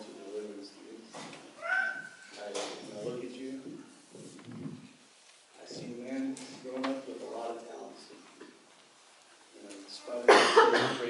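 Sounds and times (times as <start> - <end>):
man speaking into a microphone: 2.3 - 4.0, 5.6 - 8.3, 9.6 - 11.0.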